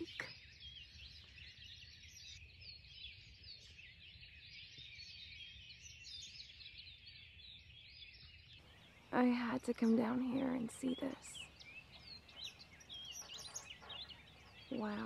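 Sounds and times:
birds chirping and trilling: 0.0s - 15.0s.

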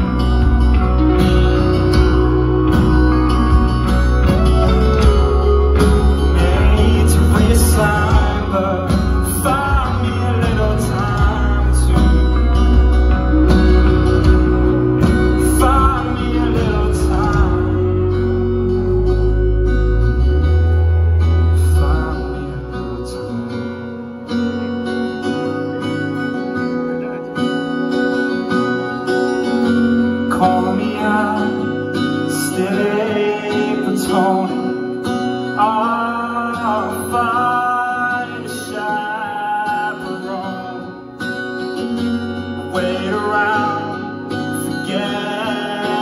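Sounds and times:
person singing: 0.0s - 18.9s, 21.2s - 23.9s, 30.1s - 41.0s, 42.6s - 46.0s
heavy bass: 0.0s - 23.9s
acoustic guitar strumming: 0.0s - 46.0s
live band music: 0.0s - 46.0s.

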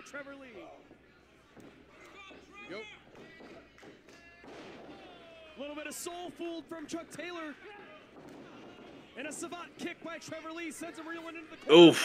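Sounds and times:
man's voice: 9.2s - 12.0s.

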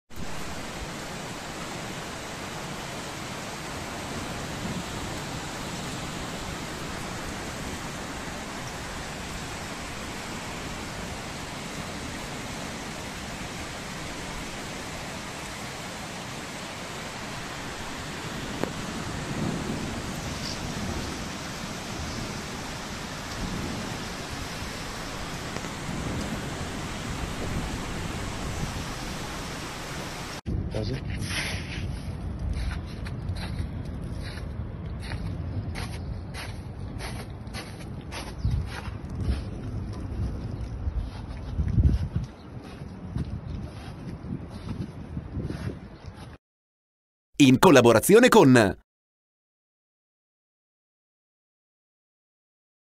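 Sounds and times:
heavy rain and hail: 0.1s - 30.7s
low thunder rumbles: 18.2s - 29.5s, 38.7s - 42.0s.

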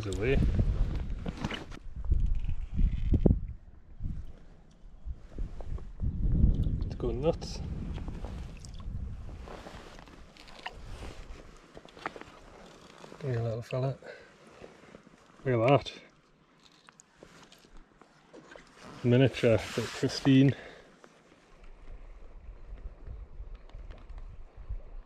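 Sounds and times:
water sloshing and splashing: 8.2s - 8.9s, 9.6s - 13.2s.

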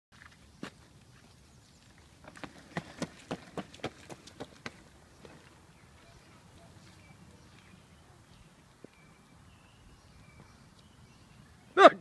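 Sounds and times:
quick footsteps on asphalt: 0.1s - 9.2s.

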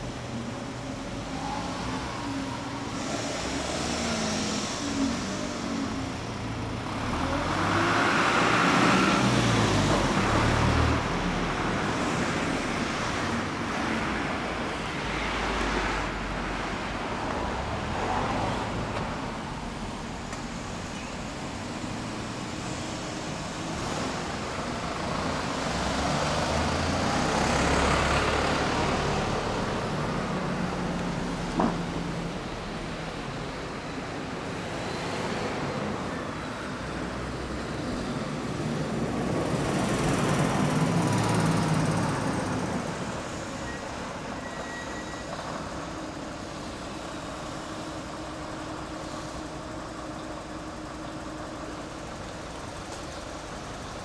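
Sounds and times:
steady traffic hum: 0.0s - 54.0s
vehicles passing: 0.0s - 54.0s.

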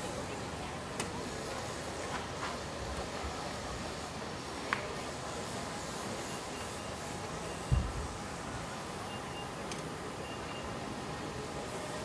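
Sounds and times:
low vehicle hum with hiss: 0.0s - 12.0s.

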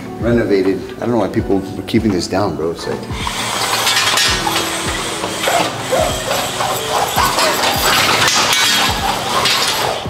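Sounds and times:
background music beat: 0.0s - 10.0s
roller blind ratcheting: 3.1s - 10.0s.

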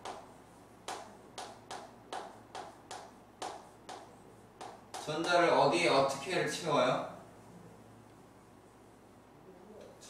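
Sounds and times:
chalk tapping on chalkboard: 0.0s - 5.6s.

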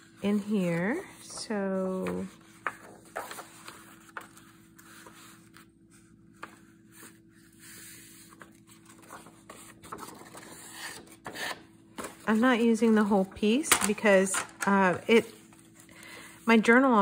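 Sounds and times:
faint steady hum: 0.0s - 17.0s
paper rustling and sliding: 0.1s - 13.3s.

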